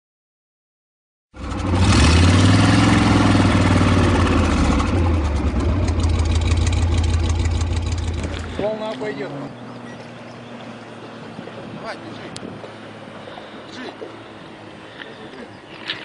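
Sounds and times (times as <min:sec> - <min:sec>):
vehicle engine revving: 0:01.4 - 0:15.0.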